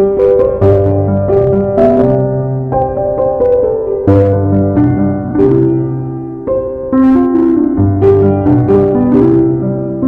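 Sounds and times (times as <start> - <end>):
slow piano music: 0.0 - 10.0.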